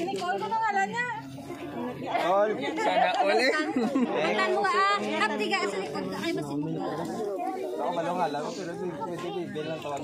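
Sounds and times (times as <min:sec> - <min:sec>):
people talking babble: 0:00.0 - 0:10.0.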